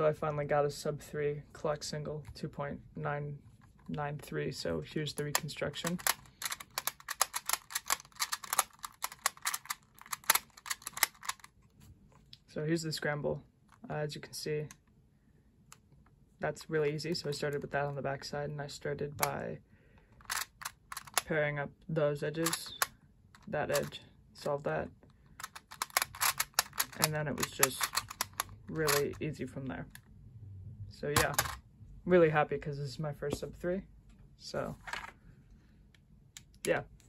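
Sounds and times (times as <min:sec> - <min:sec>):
puzzle clicking: 0:05.2 - 0:11.6, 0:20.2 - 0:21.3, 0:25.3 - 0:29.2, 0:31.2 - 0:31.6.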